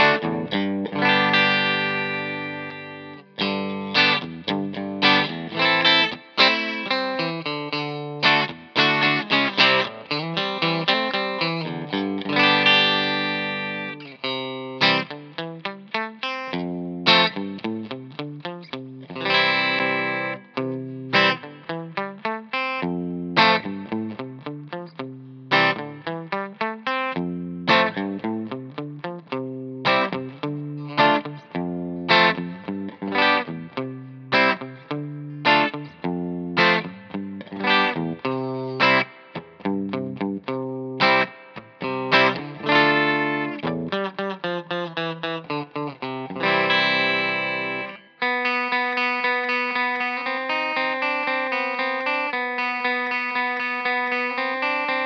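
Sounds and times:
clean electric guitar with reverb: 0.0 - 55.0.

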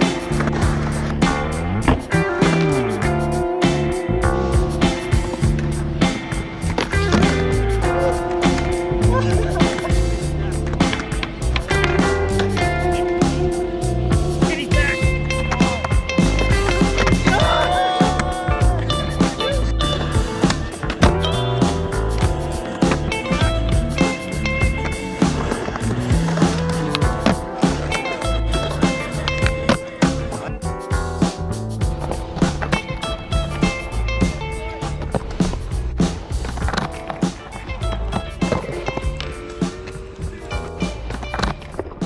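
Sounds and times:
skateboard clicks and knocks: 0.0 - 2.7, 5.1 - 7.4, 19.1 - 30.6, 32.0 - 42.0
music playing: 0.0 - 42.0
skateboard wheels rolling on concrete: 0.0 - 42.0.

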